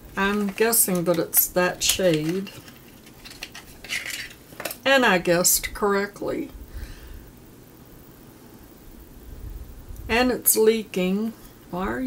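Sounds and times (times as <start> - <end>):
packaging clicks and rustling: 0.1 - 4.8.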